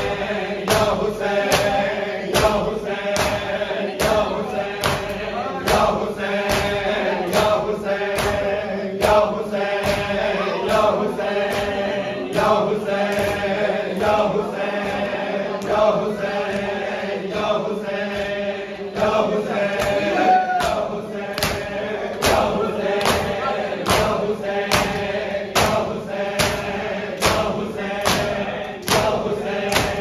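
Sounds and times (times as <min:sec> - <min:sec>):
men chanting a lament: 0:00.0 - 0:30.0
hands slapping chests: 0:00.6 - 0:14.2, 0:19.0 - 0:30.0.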